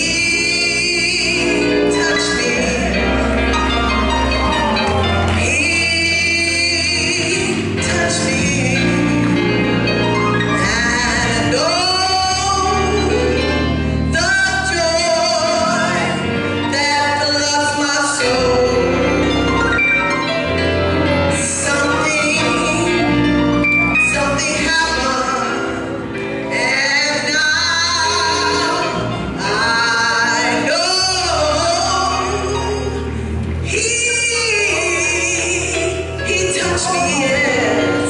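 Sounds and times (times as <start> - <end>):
woman singing gospel: 0.0 - 4.2, 4.8 - 19.5, 21.0 - 38.0
sustained instrumental chords: 0.0 - 38.0.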